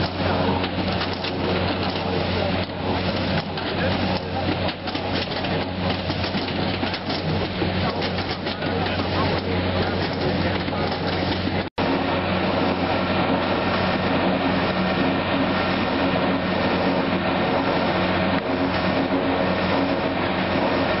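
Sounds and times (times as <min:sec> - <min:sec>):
processing machinery humming: 0:00.0 - 0:21.0.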